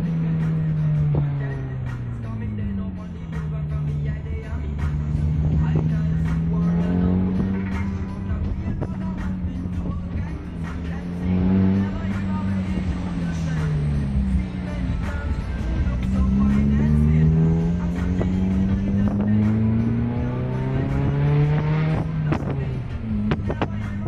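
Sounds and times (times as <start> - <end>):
car engine revving without muffler: 0.0 - 24.0.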